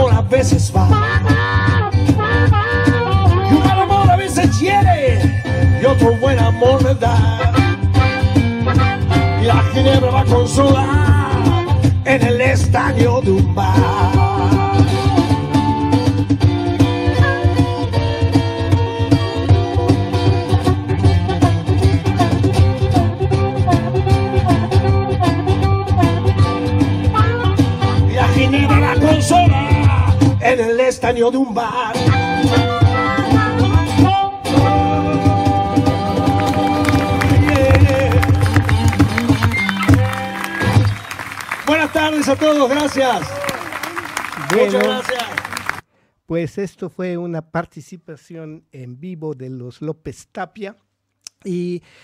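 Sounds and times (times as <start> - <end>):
harmonica chords with bends: 0.0 - 30.4, 32.0 - 42.8
cajon beat: 0.0 - 30.6, 32.0 - 45.8
acoustic guitar: 0.0 - 42.3.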